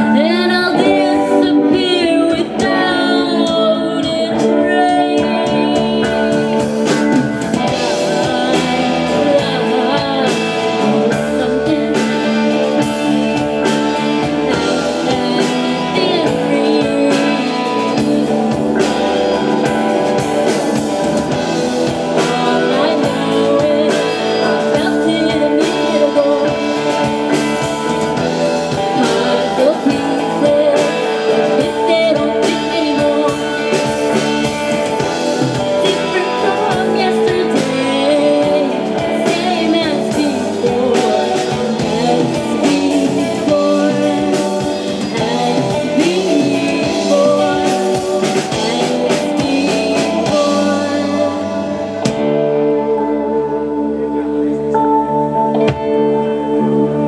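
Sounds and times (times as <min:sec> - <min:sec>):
drum kit beat: 0:00.0 - 0:52.8
bass guitar: 0:00.0 - 0:57.0
electric guitars: 0:00.0 - 0:57.0.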